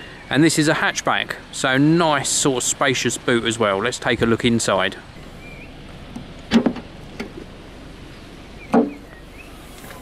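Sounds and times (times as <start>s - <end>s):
tailgate clunk opening: 6.2s - 7.5s, 8.7s - 9.1s.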